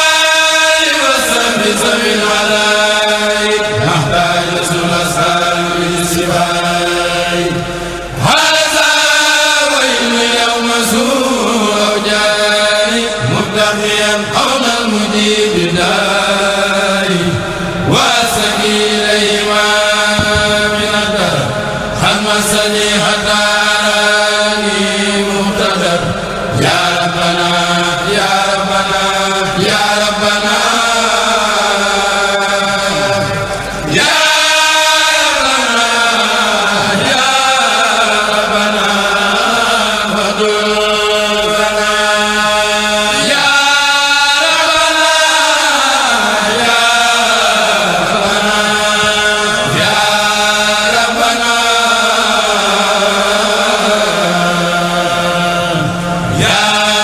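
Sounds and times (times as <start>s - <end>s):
men chanting together: 0.0s - 57.0s.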